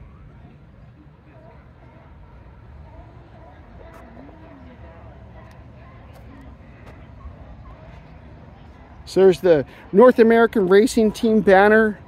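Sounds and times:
low outdoor rumble: 0.0 - 10.0
distant people talking: 0.0 - 12.0.

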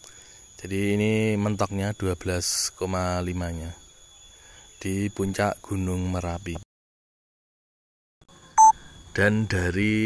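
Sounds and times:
short electronic beep: 8.6 - 8.9.

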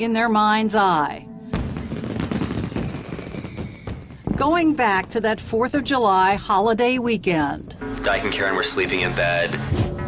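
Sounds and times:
dense crackling pops: 1.5 - 7.8.

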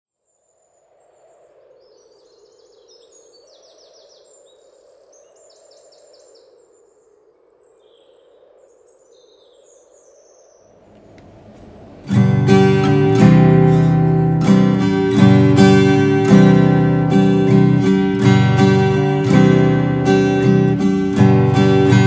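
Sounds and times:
birds chirping: 1.8 - 22.0.

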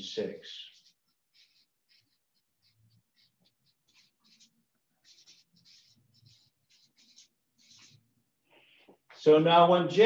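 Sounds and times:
marker scratching on paper: 0.0 - 9.2.

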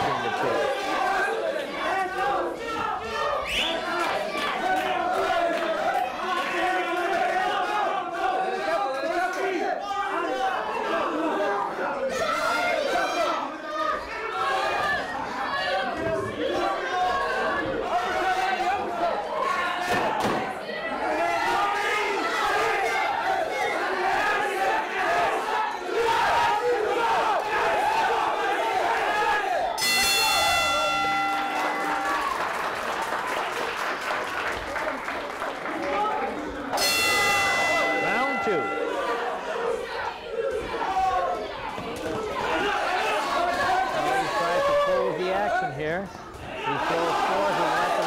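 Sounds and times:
spectators shouting and chattering: 0.0 - 48.0
boxing ring bell: 29.8 - 32.4, 36.8 - 40.0.

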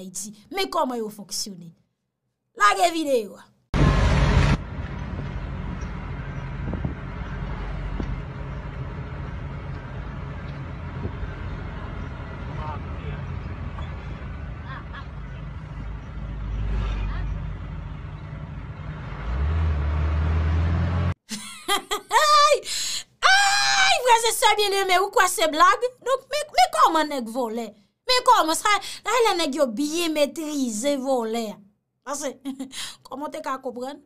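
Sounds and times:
deep steady hum: 3.8 - 21.2
traffic rumble: 3.8 - 21.2.

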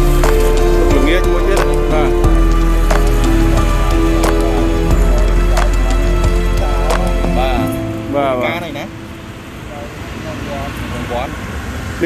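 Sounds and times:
steady droning tone: 0.0 - 12.0.

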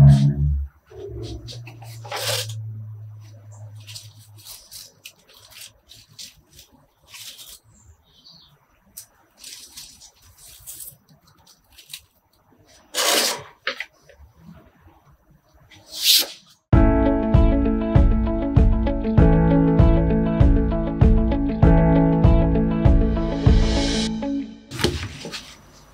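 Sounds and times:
low hum: 0.0 - 4.0
leaves rustling against hand: 3.2 - 8.0, 9.0 - 13.4.

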